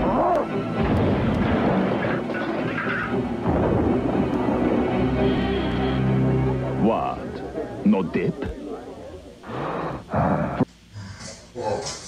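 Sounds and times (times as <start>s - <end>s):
music: 0.0s - 7.8s.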